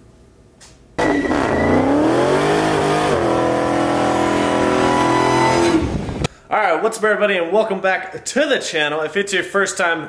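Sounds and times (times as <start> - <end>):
car engine revving hard: 1.0 - 6.2.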